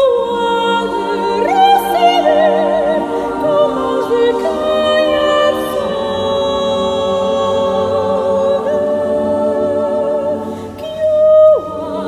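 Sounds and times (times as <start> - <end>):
choir singing sustained chord: 0.0 - 12.0.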